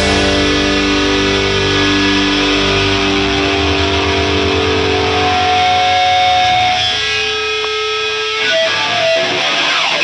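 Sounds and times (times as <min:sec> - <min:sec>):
electric guitars sustained notes: 0:00.0 - 0:10.0.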